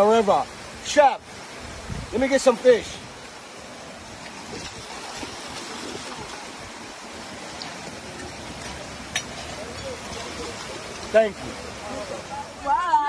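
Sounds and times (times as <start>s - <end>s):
river water flowing: 0.0s - 13.0s.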